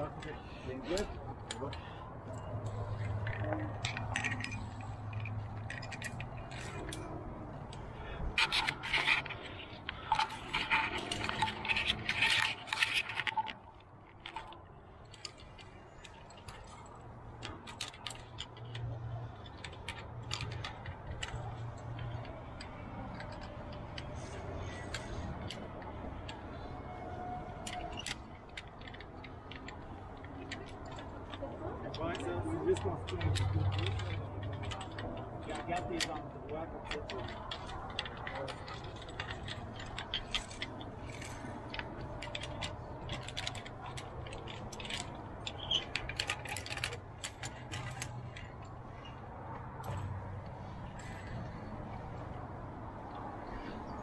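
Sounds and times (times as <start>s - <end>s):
carabiners clinking on steel cable: 0.0s - 54.0s.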